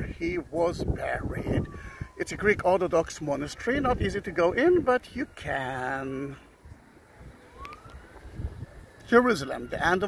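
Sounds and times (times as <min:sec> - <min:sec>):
distant siren wailing: 0:00.0 - 0:10.0.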